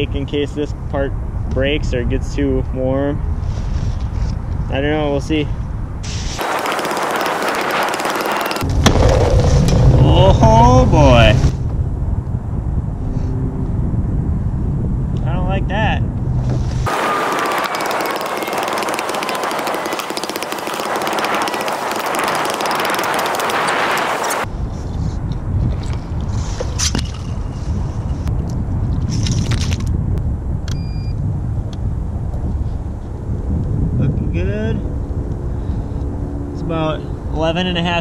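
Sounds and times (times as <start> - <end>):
wind rumbling on microphone: 0.0 - 6.4, 8.6 - 16.9, 20.8 - 38.0.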